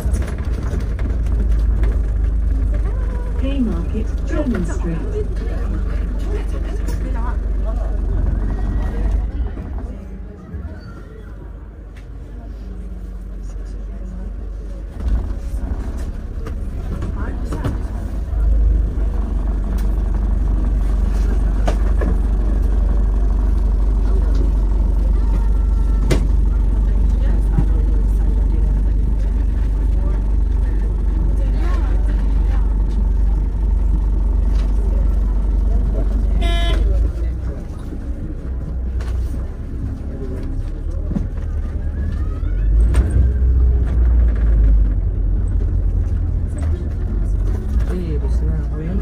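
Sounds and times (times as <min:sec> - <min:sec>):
bus engine rumbling: 0:00.0 - 0:49.0
vehicle horn toot: 0:36.3 - 0:37.0.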